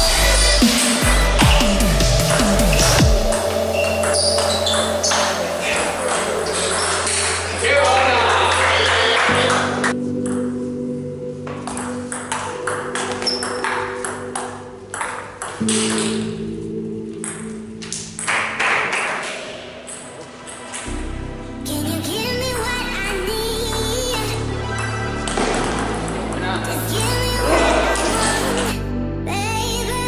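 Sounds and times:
background music: 0.0 - 30.0.

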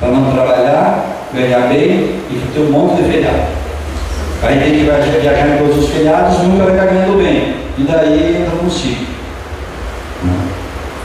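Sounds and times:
low hum: 0.0 - 11.0
microphone hiss: 0.0 - 11.0.

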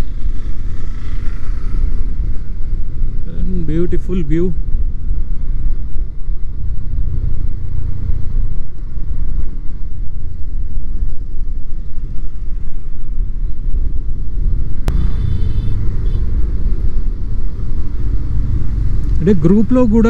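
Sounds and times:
motorcycle engine cruising: 0.0 - 20.0
wind rumble on microphone: 0.0 - 20.0.

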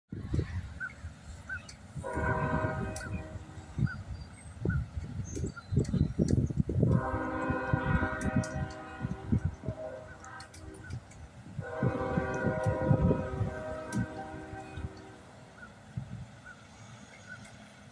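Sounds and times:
wind buffeting microphone: 0.1 - 16.7
train horn blasts: 2.0 - 4.0, 6.8 - 15.4.

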